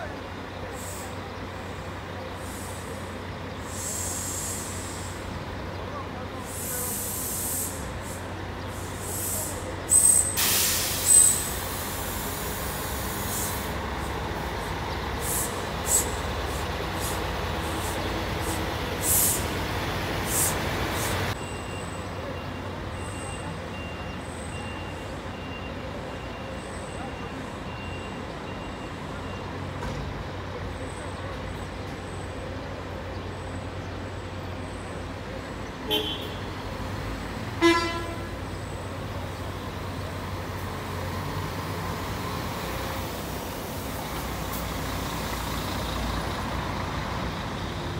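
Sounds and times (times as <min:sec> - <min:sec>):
diesel engines idling: 0:00.0 - 0:47.9
air brake hissing: 0:02.4 - 0:05.2, 0:06.4 - 0:13.8, 0:16.9 - 0:19.6, 0:20.2 - 0:21.3.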